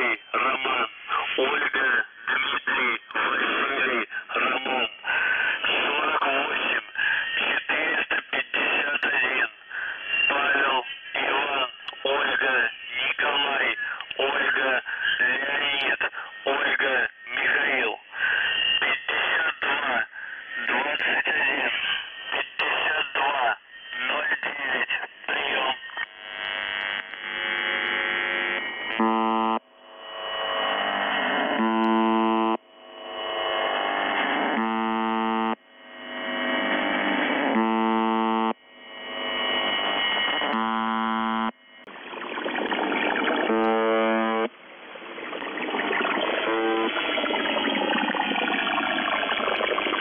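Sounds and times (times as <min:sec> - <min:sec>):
voice reading over radio: 0:00.0 - 0:26.1, 0:42.5 - 0:44.5, 0:45.4 - 0:50.0
radio buzz tone: 0:00.0 - 0:50.0
radio static: 0:00.0 - 0:50.0
receiver hiss: 0:00.0 - 0:50.0.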